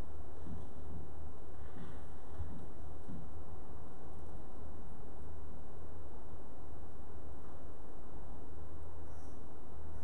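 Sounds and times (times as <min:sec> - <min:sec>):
low hum: 0:00.0 - 0:10.0
faint hiss: 0:01.2 - 0:10.0.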